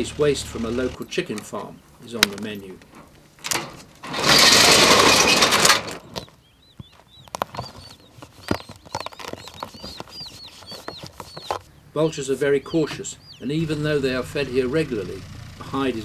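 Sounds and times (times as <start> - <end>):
small birds chirping: 0.0 - 3.4, 5.9 - 16.0.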